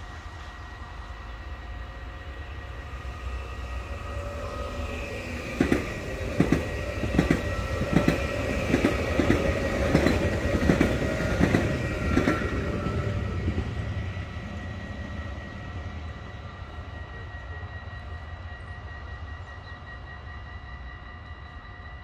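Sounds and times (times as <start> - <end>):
electric train passing: 0.0 - 22.0
train wheels clicking over rail joints: 4.2 - 14.8.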